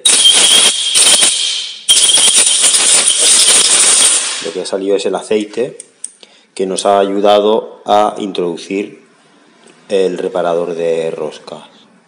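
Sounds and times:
thin whistle in air hiss: 0:00.0 - 0:04.5.

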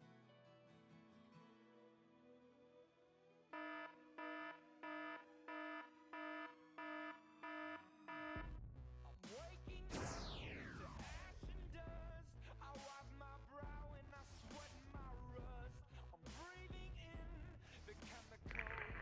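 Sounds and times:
electronic alarm beeping: 0:03.6 - 0:08.5
high falling whistle: 0:09.9 - 0:11.6.

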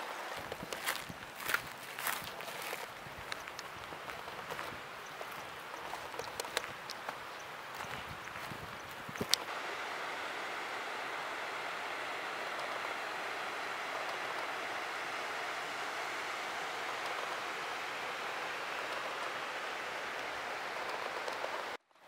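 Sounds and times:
creek running over rocks: 0:00.0 - 0:21.2.

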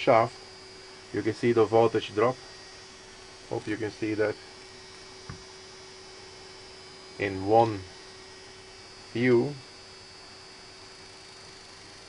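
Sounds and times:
small motor humming with high whine: 0:00.0 - 0:12.0
soft low thump: 0:05.2 - 0:05.5.

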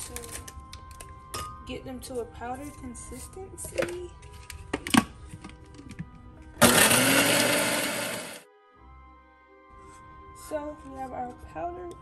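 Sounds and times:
blender chopping cookies: 0:06.6 - 0:08.4.

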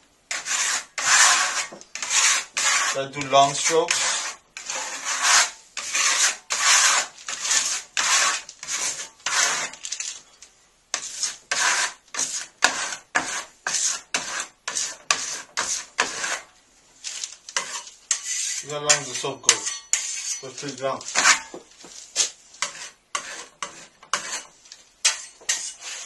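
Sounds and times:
trowel scraping plaster wall: 0:00.3 - 0:10.2, 0:10.9 - 0:26.0.

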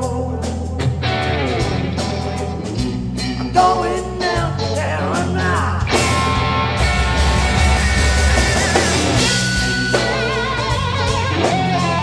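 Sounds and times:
bass guitar: 0:00.0 - 0:12.0
drums: 0:00.0 - 0:12.0
lead electric guitar: 0:00.0 - 0:12.0.

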